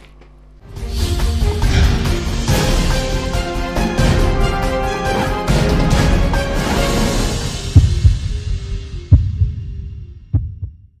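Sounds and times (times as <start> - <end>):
news theme music: 0.6 - 10.4
deep bass hits: 7.6 - 10.9.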